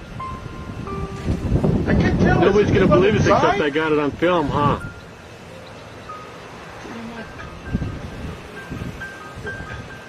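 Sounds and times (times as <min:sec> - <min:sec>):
wind on microphone: 0:00.0 - 0:05.0, 0:07.2 - 0:10.0
chime-like music: 0:00.2 - 0:01.8, 0:04.8 - 0:10.0.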